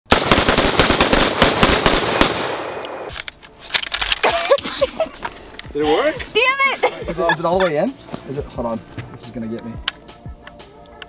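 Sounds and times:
rifles firing rapidly: 0.1 - 2.8
high metallic ping: 2.8 - 3.1.

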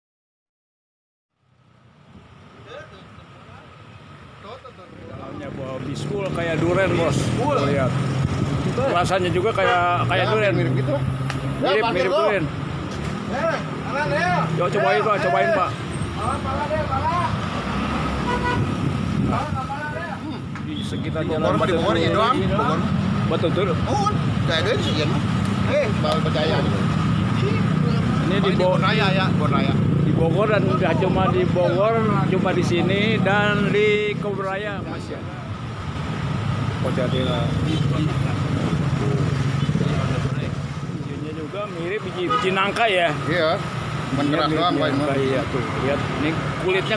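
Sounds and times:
street traffic engines: 1.3 - 46.9
car horn toot: 18.2 - 18.7, 42.2 - 42.7.

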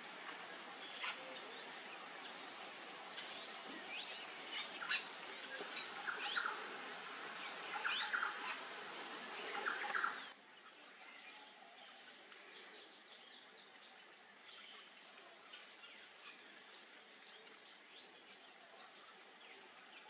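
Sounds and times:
birds chirping: 0.0 - 20.0
forest ambience hiss: 0.0 - 20.0.

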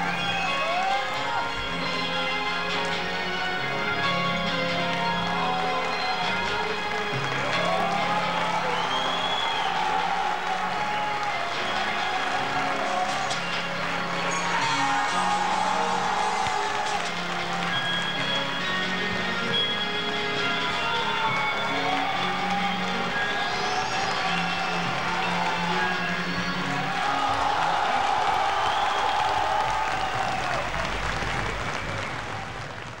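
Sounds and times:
music with long held notes: 0.0 - 32.4
audience applause and cheering: 0.0 - 33.0.

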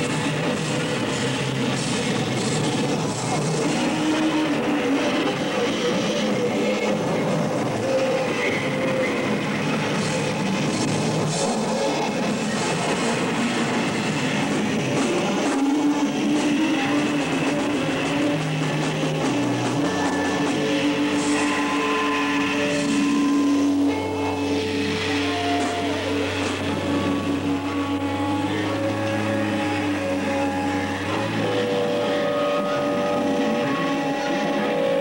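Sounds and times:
noise rock band droning: 0.0 - 35.0.

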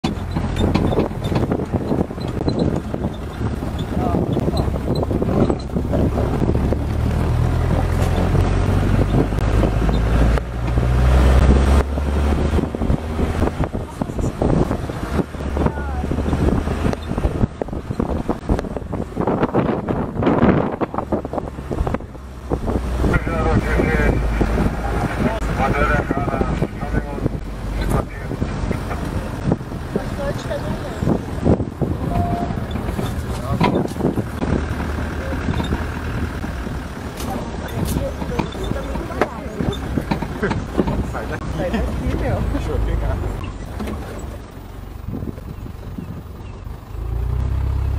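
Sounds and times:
vehicle engine rumbling: 0.0 - 47.9
people talking indistinctly: 3.9 - 6.3, 15.5 - 16.2, 23.0 - 31.3, 37.1 - 43.4.

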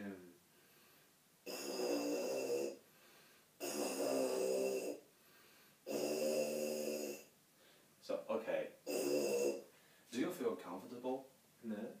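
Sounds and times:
lips buzzing into tuba mouthpiece: 1.5 - 2.8, 3.6 - 5.0, 5.9 - 7.3, 8.9 - 9.7.

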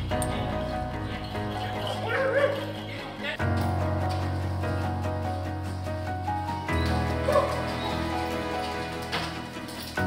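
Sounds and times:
background music: 0.0 - 10.0
dog barking: 7.2 - 7.7.

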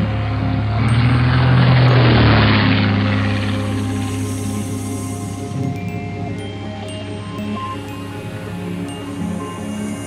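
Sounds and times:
background music: 0.0 - 10.0
propeller aircraft engine: 0.0 - 10.0.

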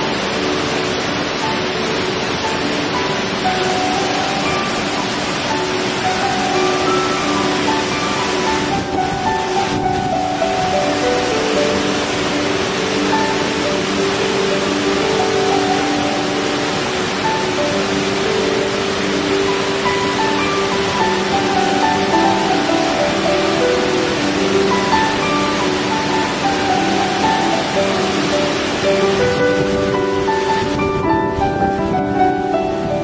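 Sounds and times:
flowing water: 0.0 - 33.0
soft instrumental melody: 0.0 - 33.0.

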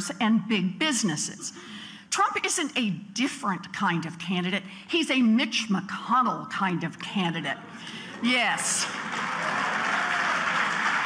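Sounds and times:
audience applauding: 8.1 - 11.0.

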